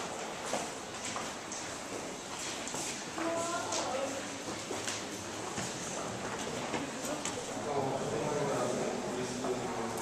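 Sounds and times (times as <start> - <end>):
background murmur: 3.0 - 10.0.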